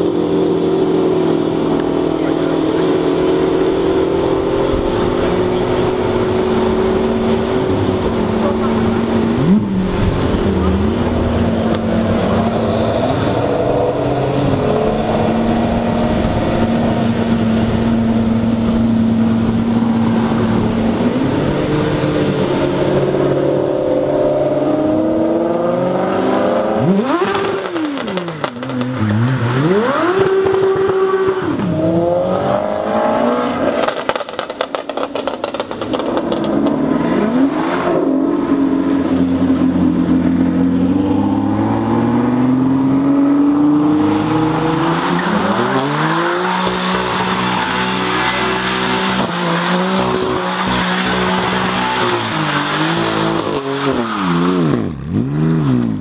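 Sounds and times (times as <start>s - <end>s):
car engines revving: 0.0s - 56.0s
tyres squealing: 15.8s - 20.1s, 44.0s - 54.5s.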